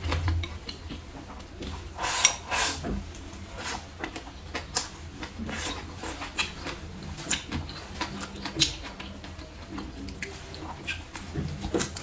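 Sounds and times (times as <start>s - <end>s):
chewing crunches: 3.6s - 12.0s.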